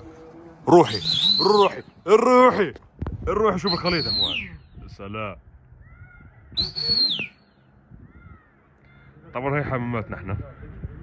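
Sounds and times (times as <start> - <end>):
soft whistled glide: 0.8 - 1.9
shrill high whistle: 0.9 - 1.9, 3.6 - 4.6, 6.6 - 7.4.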